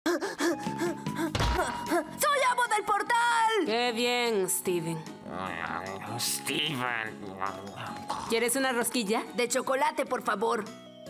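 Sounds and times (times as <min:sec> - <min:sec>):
cartoon background music: 0:00.1 - 0:11.0.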